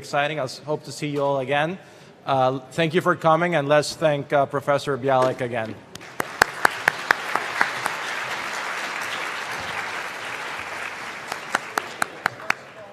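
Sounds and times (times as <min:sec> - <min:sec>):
sharp individual claps: 0:06.0 - 0:12.7
audience applauding: 0:06.0 - 0:12.9.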